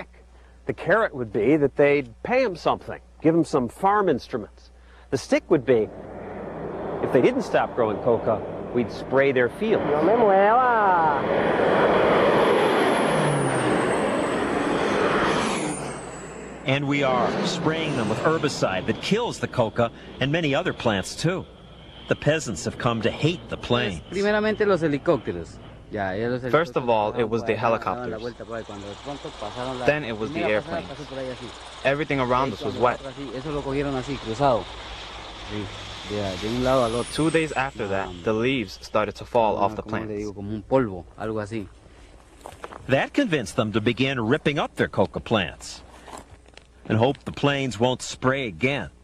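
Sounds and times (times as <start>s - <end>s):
propeller plane flying overhead: 4.8s - 40.0s.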